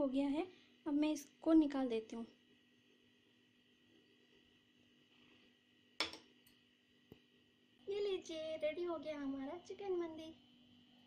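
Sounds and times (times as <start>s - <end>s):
metal bowl clinking: 6.0s - 6.6s.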